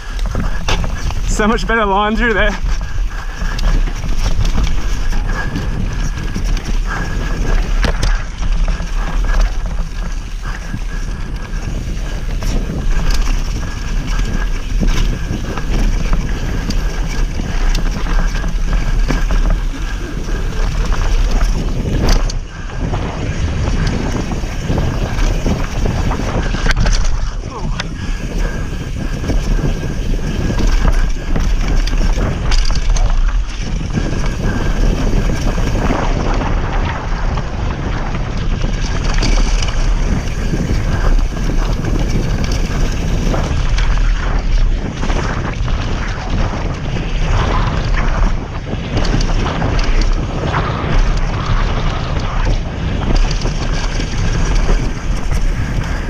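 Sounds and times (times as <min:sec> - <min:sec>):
bike rattling over bumps: 0:00.0 - 0:56.0
tyres rolling on dirt: 0:00.0 - 0:56.0
wind rushing over microphone: 0:00.0 - 0:56.0.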